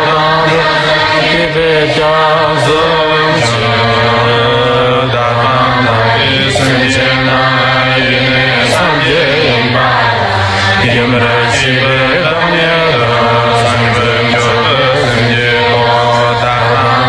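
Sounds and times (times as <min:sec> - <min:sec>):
person chanting prayer: 0:00.0 - 0:17.0
steady low drone: 0:00.0 - 0:17.0.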